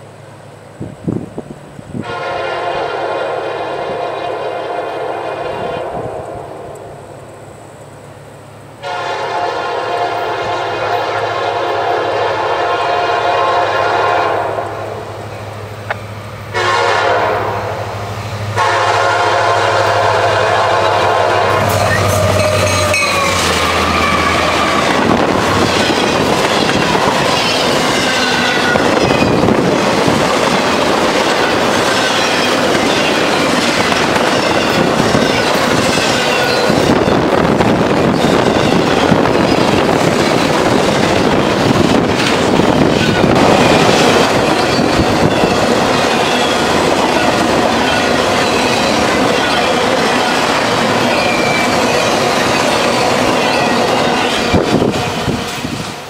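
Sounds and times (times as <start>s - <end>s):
train cars rushing and clattering: 0.0s - 56.0s
locomotive air horn blasts: 2.0s - 6.7s, 8.8s - 15.1s, 16.5s - 25.3s.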